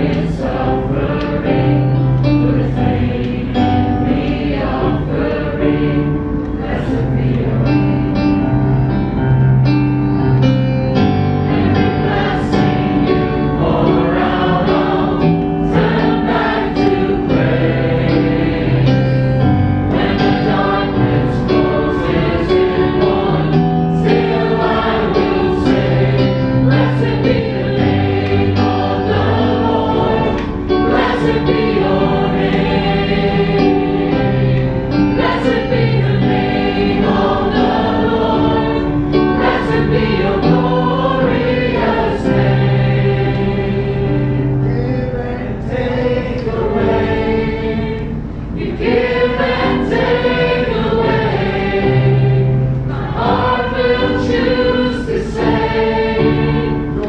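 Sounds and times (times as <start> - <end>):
group singing worship song: 0.0 - 9.1, 10.3 - 57.0
keyboard playing chords: 0.0 - 57.0.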